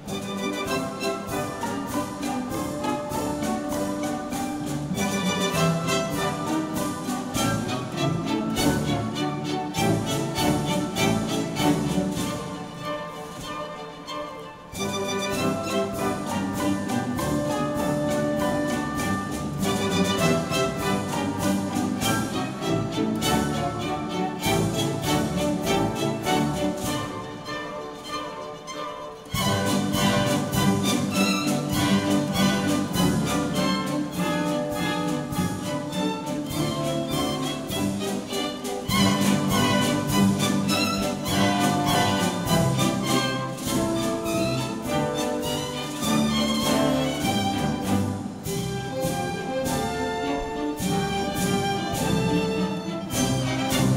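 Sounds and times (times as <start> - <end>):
orchestra playing dance music: 0.0 - 53.9.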